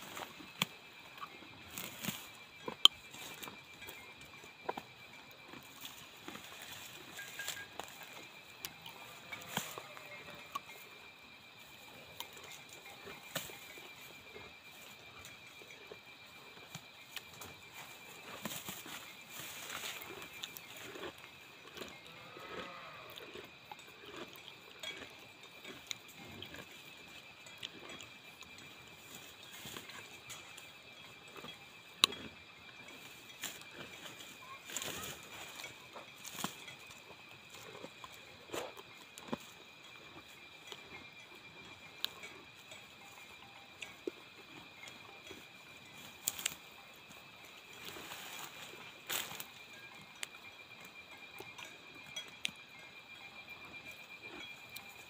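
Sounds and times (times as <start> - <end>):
cow tearing and chewing grass: 0.0 - 55.0
high-pitched insect chorus: 0.0 - 55.0.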